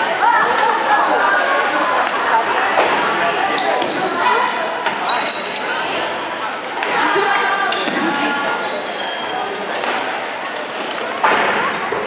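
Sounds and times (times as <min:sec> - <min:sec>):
echoing crowd chatter: 0:00.0 - 0:12.0
sneaker squeak on court floor: 0:04.8 - 0:05.7.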